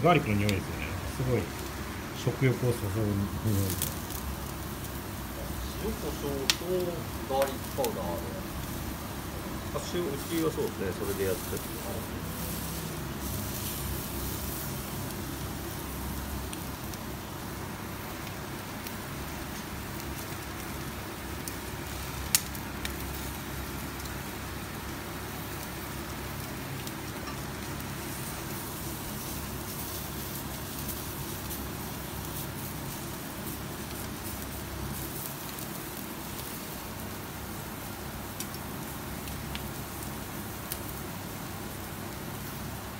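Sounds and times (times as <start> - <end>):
grill running: 0.0 - 37.8
chicken sizzling over fire: 0.0 - 42.9.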